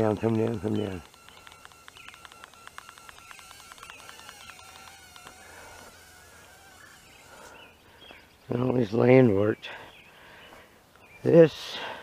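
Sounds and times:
high-pitched drone motor buzz: 0.0s - 7.9s.

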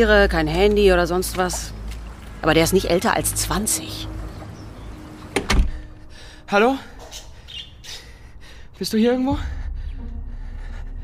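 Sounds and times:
door latch clicks: 5.3s - 5.7s
heavy door thump: 5.3s - 5.9s.

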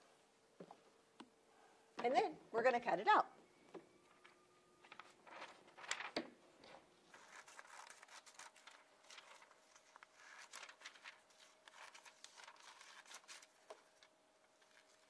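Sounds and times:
paper rustling: 4.0s - 15.0s.

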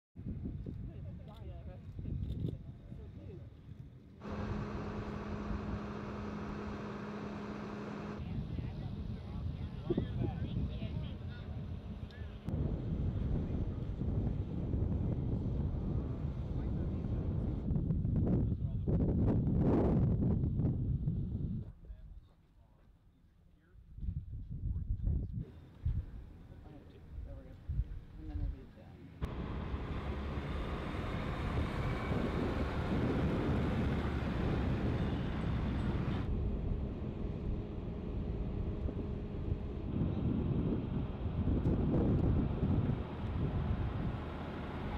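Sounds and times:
wind buffeting microphone: 0.2s - 4.1s, 8.2s - 21.7s, 23.9s - 26.4s, 30.0s - 44.9s
wheel loader diesel engine running: 4.2s - 8.2s, 29.2s - 41.4s, 42.4s - 44.9s.

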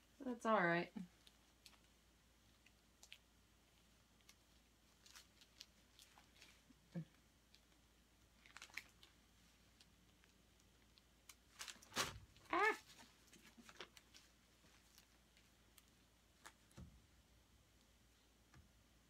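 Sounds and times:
person saying ah: 12.5s - 12.9s.

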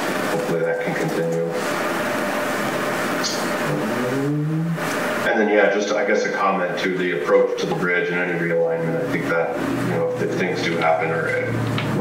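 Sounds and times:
people talking: 0.3s - 1.6s, 3.2s - 12.0s.

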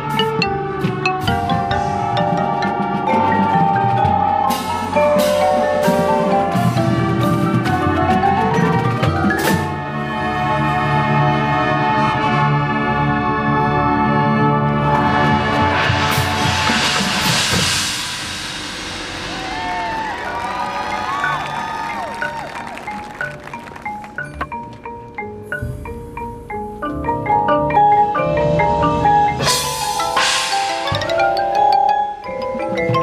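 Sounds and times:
mallet notes: 0.0s - 10.0s, 20.4s - 33.0s
marching band playing: 0.0s - 13.0s, 14.4s - 26.1s, 27.7s - 33.0s
cymbal swell: 16.0s - 21.1s.

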